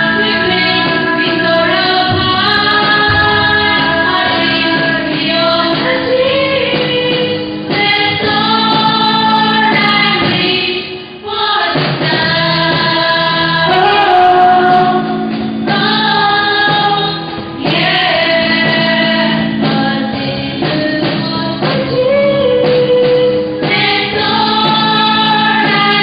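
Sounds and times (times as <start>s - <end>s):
students singing into microphones: 0.0s - 26.0s.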